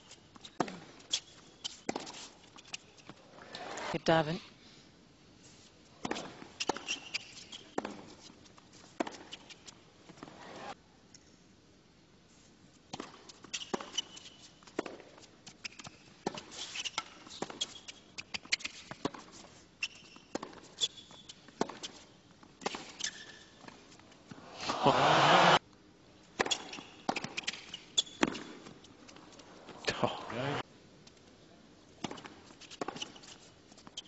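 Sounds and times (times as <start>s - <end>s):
tennis ball bouncing: 20.3s - 20.6s, 26.4s - 28.8s
racket hitting tennis ball: 26.4s - 28.6s.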